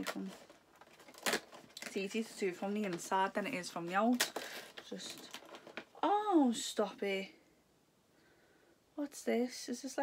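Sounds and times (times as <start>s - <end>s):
cardboard tearing: 0.0s - 1.9s.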